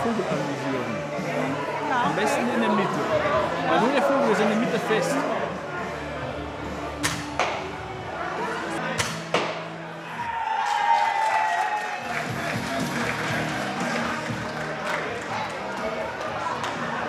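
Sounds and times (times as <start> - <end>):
music: 0.0 - 17.0
crossbow shots snapping: 7.0 - 7.6, 9.0 - 9.6.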